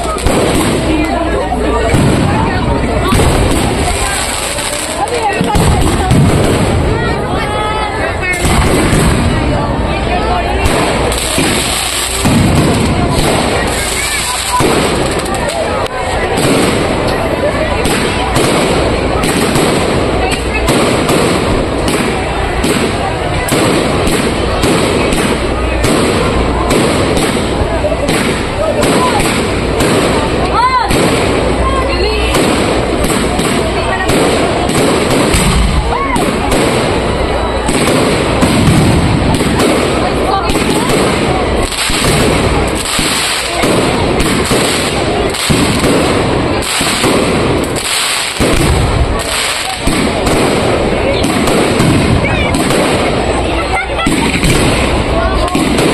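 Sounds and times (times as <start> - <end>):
firework shell bursts and crackling: 0.0 - 7.2, 8.2 - 55.9
whistling fireworks: 0.0 - 55.9.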